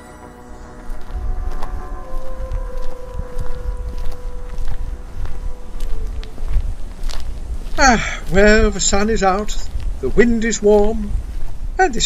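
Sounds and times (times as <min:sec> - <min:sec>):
held music note: 0:00.0 - 0:09.0
footsteps: 0:00.0 - 0:12.0
low wind: 0:00.0 - 0:12.0.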